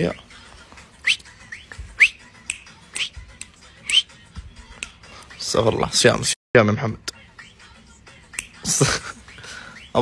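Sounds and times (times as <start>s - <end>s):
rhythmic hand claps: 1.1s - 5.0s.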